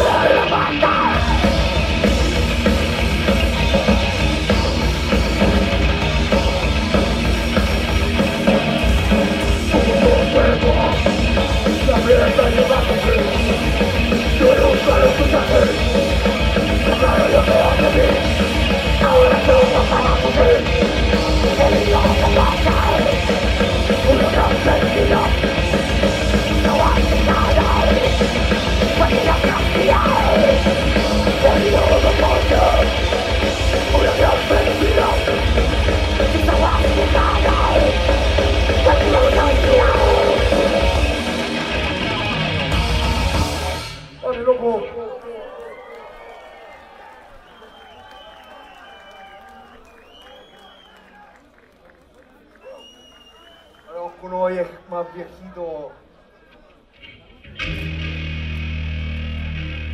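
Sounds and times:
screamed vocals: 0.0 - 1.8, 23.9 - 25.7, 26.5 - 41.2
thrash metal band playing live: 0.0 - 44.4, 57.6 - 59.9
crowd cheering and yelling: 0.0 - 59.9.

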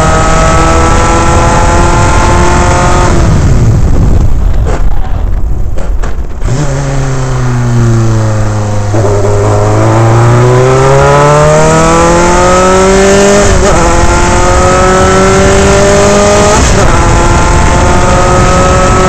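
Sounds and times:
racing car engine revving: 0.0 - 3.6, 6.4 - 19.0.

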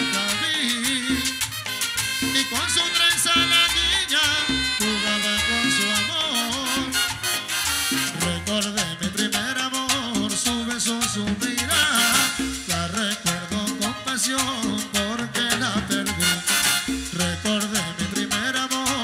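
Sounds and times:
latin dance band playing: 0.0 - 19.0.

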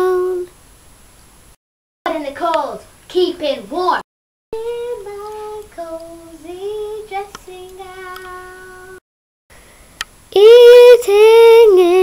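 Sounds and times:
child singing wordless tune: 0.0 - 0.5, 2.1 - 4.0, 4.6 - 9.0, 10.3 - 12.0.

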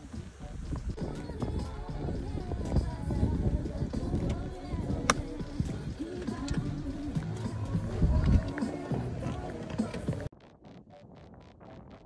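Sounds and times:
background music: 0.0 - 10.3.

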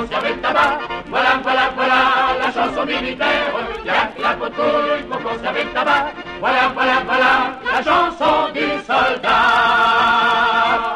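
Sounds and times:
chorus singing drinking song: 0.0 - 10.9.

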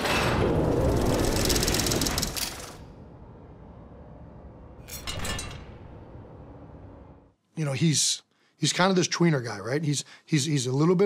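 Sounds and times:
loud mechanical rattle: 0.0 - 2.9
low rumble: 2.8 - 7.3.

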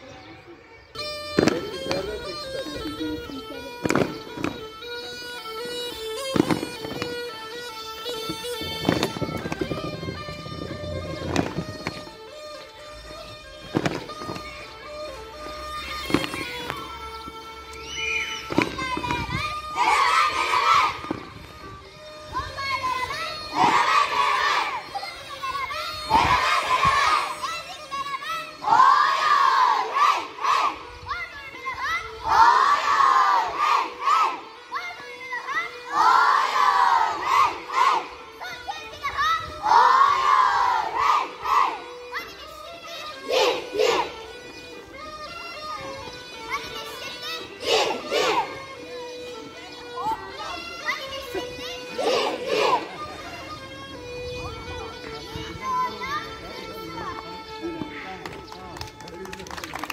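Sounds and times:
bagpipe playing dance tune: 0.0 - 59.9
children shouting together: 14.4 - 57.6.

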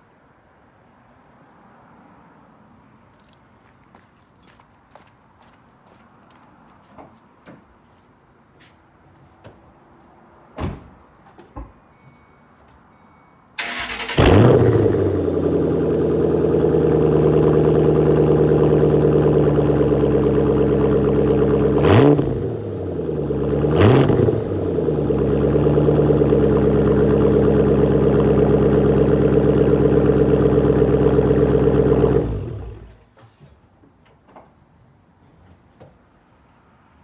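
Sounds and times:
car engine idling and revving: 13.6 - 33.0.

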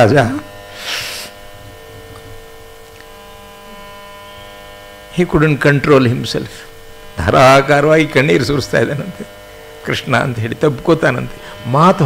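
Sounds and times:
electrical mains hum: 0.0 - 12.0
short hiss: 0.7 - 1.4.

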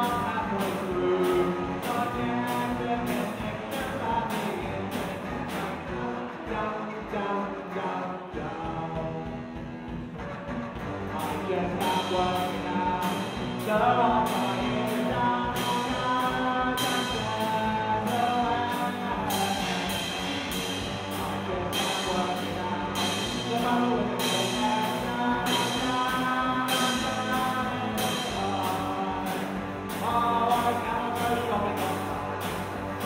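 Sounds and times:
drum kit beat on cymbals: 0.0 - 6.0, 9.0 - 33.0
electric guitars: 0.0 - 33.0.

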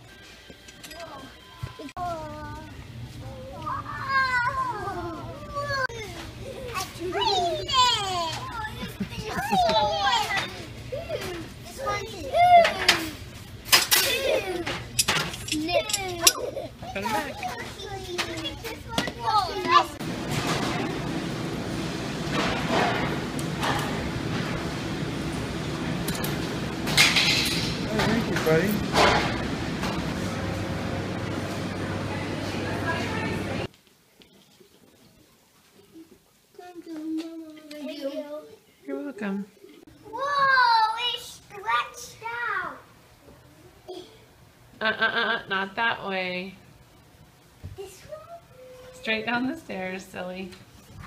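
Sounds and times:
steady background hum: 0.0 - 51.0
children squealing and calling out: 3.2 - 13.2, 40.1 - 42.8.

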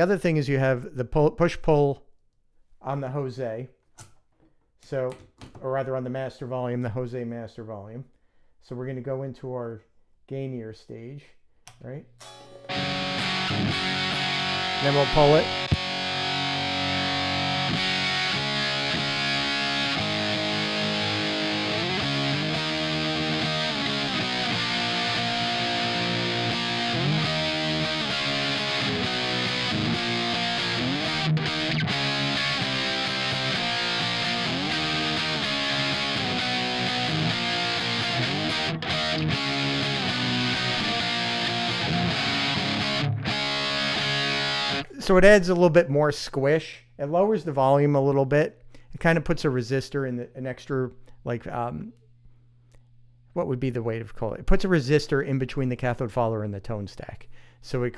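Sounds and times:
distorted electric guitar riffing: 12.3 - 45.0.

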